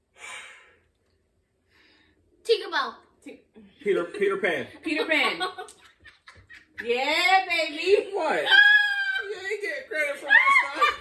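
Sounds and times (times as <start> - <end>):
faint breath: 0.1 - 0.9, 1.6 - 2.4.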